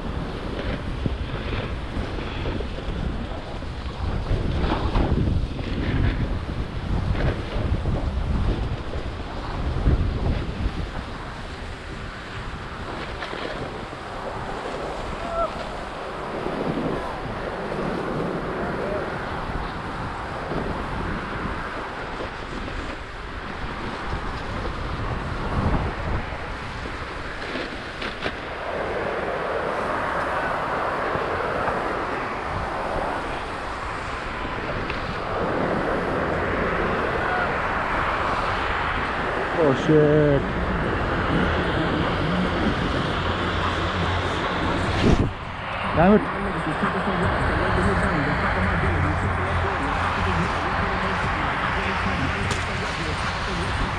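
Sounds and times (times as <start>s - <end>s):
wind rushing over microphone: 0.0s - 53.9s.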